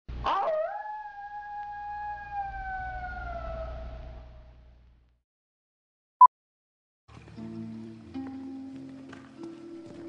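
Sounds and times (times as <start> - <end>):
long howl: 0.2 - 4.7.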